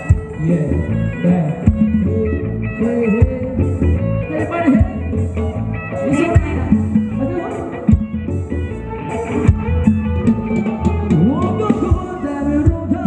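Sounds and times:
bass: 0.0 - 13.0
electric guitar line: 0.0 - 13.0.

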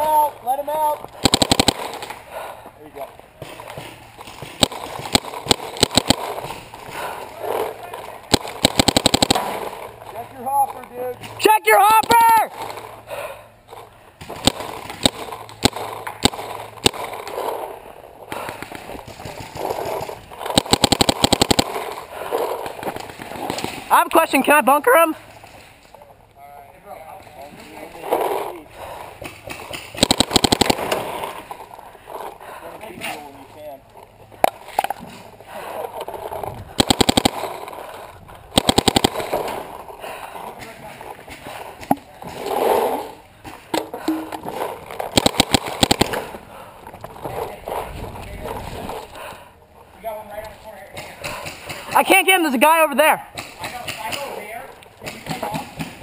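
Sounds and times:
paintball marker firing rapidly: 1.1 - 2.2, 3.4 - 7.2, 8.3 - 10.0, 14.2 - 17.6, 18.4 - 23.9, 29.4 - 31.4, 36.7 - 39.8, 44.4 - 46.5
distant shouting voices: 9.4 - 14.2.

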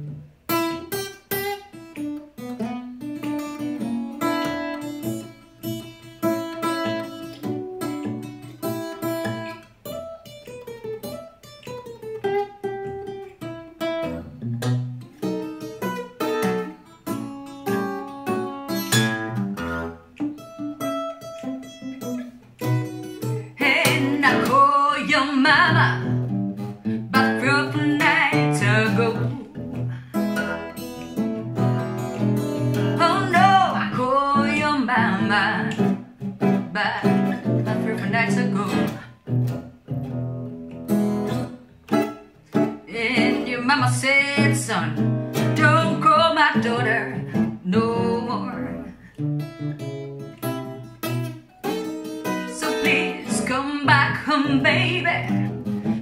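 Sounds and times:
acoustic guitar melody: 0.0 - 56.0
woman singing: 23.5 - 26.3, 26.9 - 29.6, 32.6 - 39.2, 42.8 - 49.0, 52.2 - 56.0.

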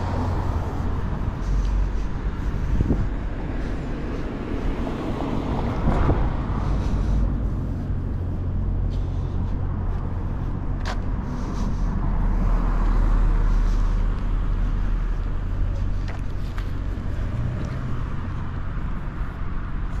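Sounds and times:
car passing: 0.0 - 20.0
low traffic rumble: 0.0 - 20.0.

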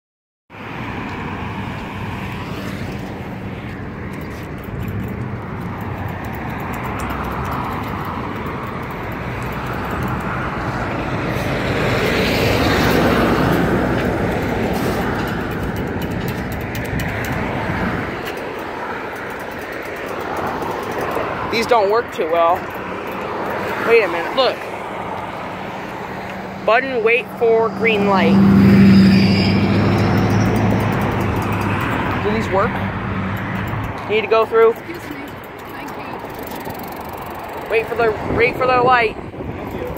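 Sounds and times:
traffic noise: 0.5 - 39.9
vehicle passing by: 0.6 - 39.9.

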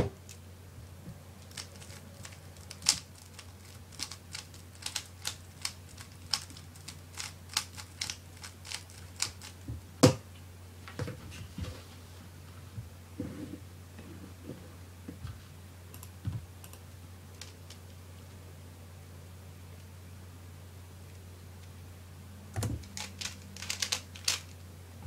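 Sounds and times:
plastic cube clicking: 1.5 - 9.6, 22.8 - 24.5.

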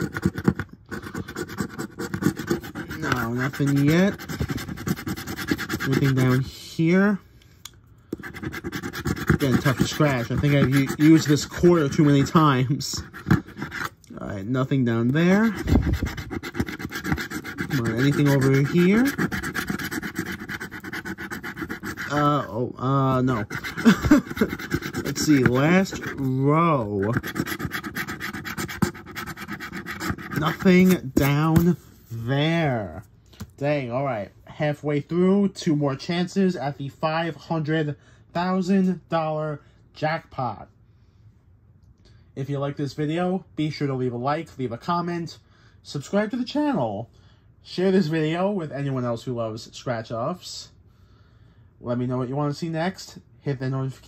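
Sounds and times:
coin scraping scratch-off ticket: 0.0 - 6.5, 8.2 - 14.0, 15.2 - 22.4, 23.0 - 31.8.

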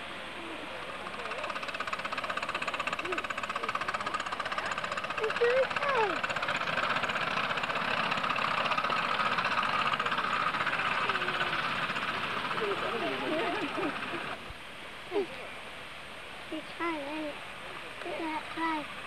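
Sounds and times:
steam locomotive exhaust chuffing: 0.0 - 14.5.

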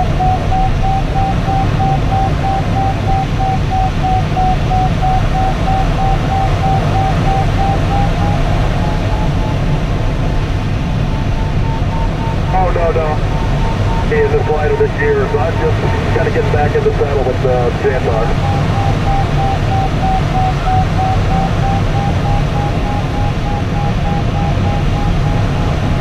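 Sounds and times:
electronic variometer tone: 0.0 - 26.0.

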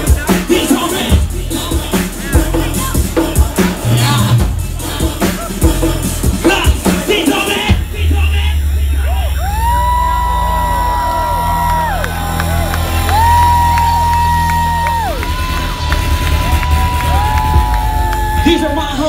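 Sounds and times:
heavy bass drone: 0.0 - 19.0
crowd cheering: 8.5 - 19.0.

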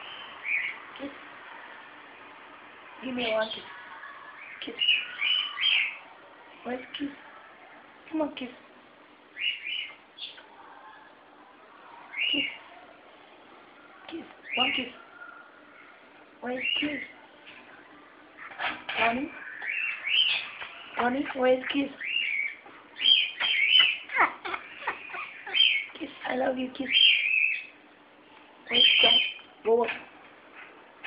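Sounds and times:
parrot whistling and chirping: 19.4 - 20.6, 22.0 - 25.9.

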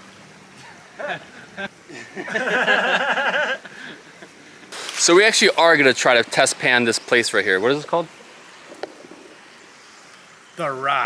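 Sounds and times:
creek flowing: 0.0 - 11.0.

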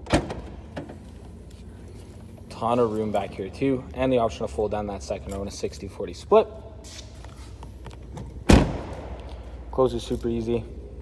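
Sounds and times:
car liftgate shutting thud: 8.4 - 8.9.

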